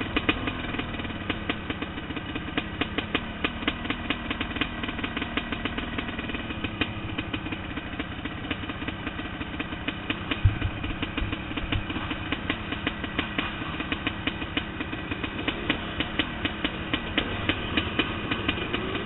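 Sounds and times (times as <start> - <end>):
dirt bike engines idling: 0.0 - 19.0
dull low thumps: 10.2 - 14.0.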